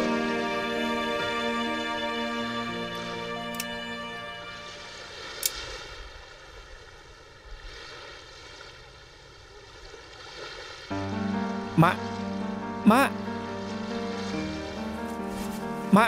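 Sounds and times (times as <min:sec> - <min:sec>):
held musical chord: 0:00.0 - 0:05.2, 0:10.9 - 0:16.0
soft drama background music: 0:00.0 - 0:05.5, 0:10.9 - 0:16.0.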